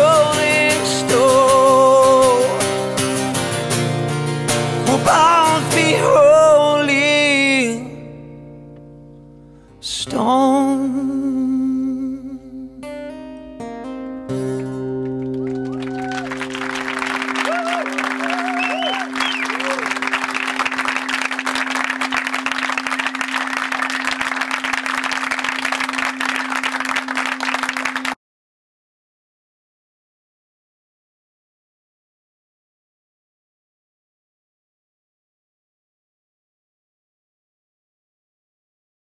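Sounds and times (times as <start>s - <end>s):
man singing with vibrato: 0.0s - 3.0s, 4.8s - 8.1s, 9.8s - 12.9s
strummed acoustic guitar: 0.0s - 15.4s
audience applause and cheers: 15.0s - 28.2s.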